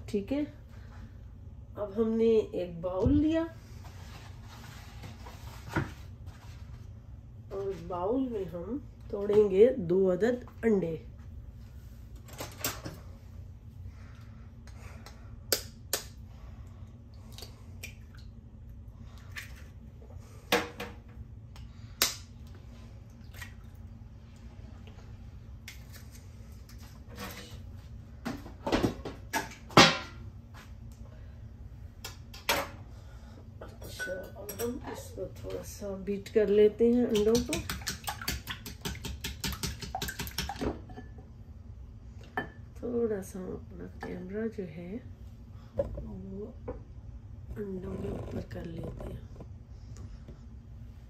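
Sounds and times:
knife tapping eggshells and bowl: 37.1s - 40.6s.

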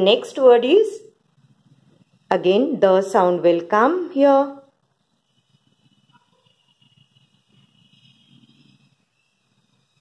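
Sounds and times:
pencil writing on paper: 1.2s - 2.4s, 4.9s - 10.0s.

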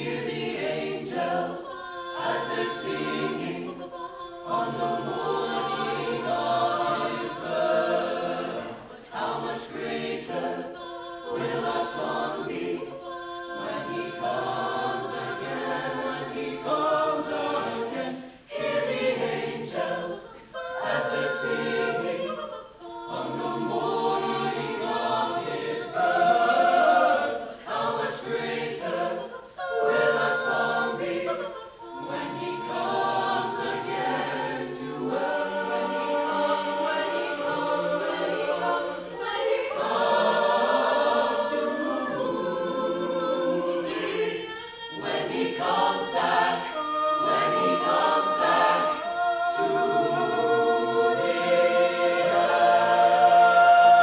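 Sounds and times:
choir singing a cappella: 0.0s - 54.0s.

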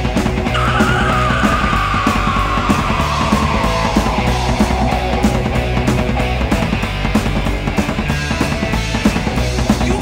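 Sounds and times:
heavy metal song: 0.0s - 10.0s
long wavering high note: 0.6s - 6.1s.

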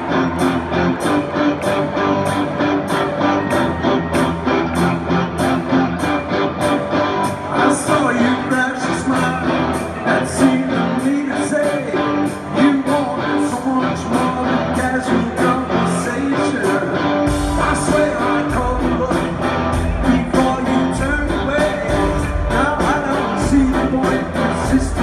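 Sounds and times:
bass: 0.0s - 25.0s
electric guitars: 0.0s - 25.0s
live rock band: 0.0s - 25.0s
lead vocals: 7.3s - 25.0s
steady drum beat: 17.3s - 25.0s.

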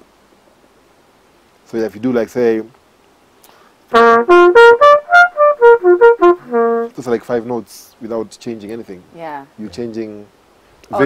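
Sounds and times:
trumpet playing short notes: 3.9s - 7.0s.

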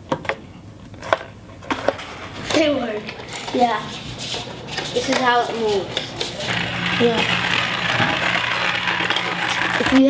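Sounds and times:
wind-up toy rattling on hard floor: 4.8s - 10.0s.

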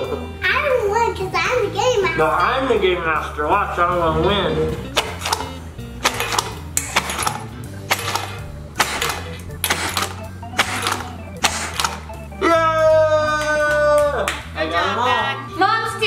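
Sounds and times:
background music with beat: 2.0s - 16.0s
sharp clicks of party blower: 5.0s - 12.2s
long held cheer: 12.4s - 14.4s.

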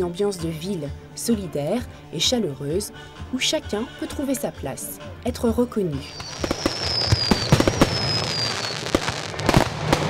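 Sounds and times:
fireworks bangs and crackles: 6.1s - 10.0s
high falling firework whistle: 6.1s - 10.0s.

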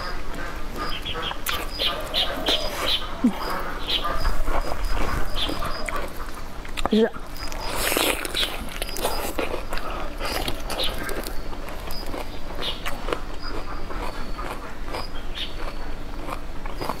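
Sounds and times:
person chewing: 0.4s - 17.0s.

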